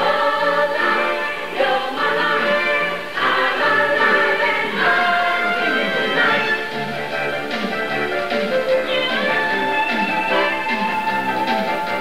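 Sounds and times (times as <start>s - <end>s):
choir singing sustained notes: 0.0s - 12.0s
orchestral accompaniment: 0.0s - 12.0s.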